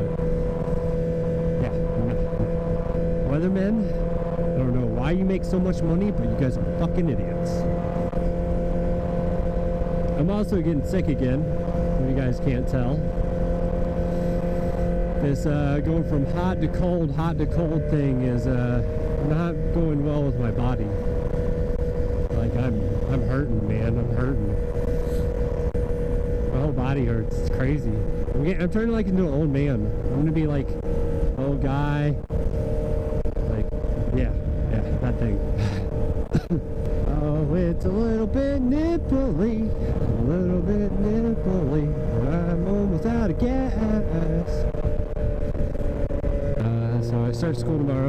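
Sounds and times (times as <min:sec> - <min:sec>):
motorcycle engine cruising: 0:00.0 - 0:48.0
wind rumble on microphone: 0:00.0 - 0:48.0
wind noise on microphone: 0:32.2 - 0:47.1.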